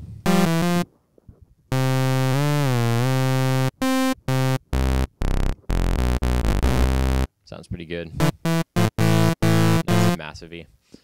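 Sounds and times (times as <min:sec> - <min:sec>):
synthesizer low note bending: 0:00.3 - 0:00.8, 0:01.7 - 0:07.3, 0:08.2 - 0:10.2.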